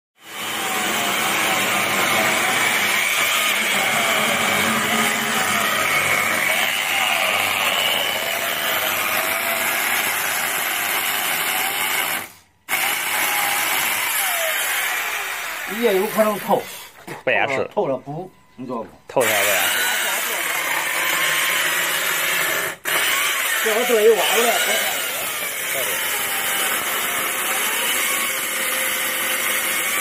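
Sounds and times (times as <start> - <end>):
power tool cutting wood: 0.2 - 16.8, 19.2 - 30.0.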